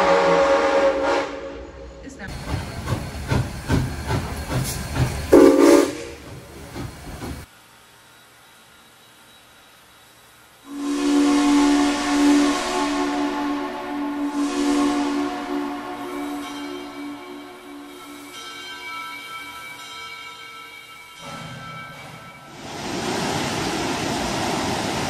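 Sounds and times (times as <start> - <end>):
train whistle blast: 0.0 - 1.9, 5.3 - 6.2, 10.7 - 18.3
steam locomotive hissing and chuffing: 0.0 - 25.0.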